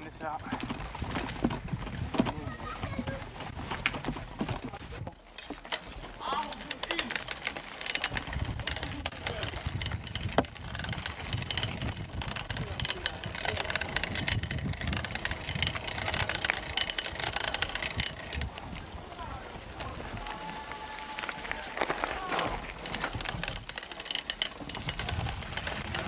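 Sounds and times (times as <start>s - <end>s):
small clicks and knocks: 0.2s - 18.7s, 21.2s - 26.0s
indistinct voices: 6.1s - 7.4s, 12.0s - 26.0s.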